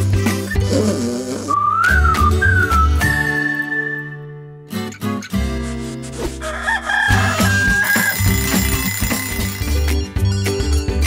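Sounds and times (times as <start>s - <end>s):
cartoon music with pulsing bass: 0.0s - 3.4s, 7.0s - 11.0s
person whistling a tune: 1.5s - 4.5s.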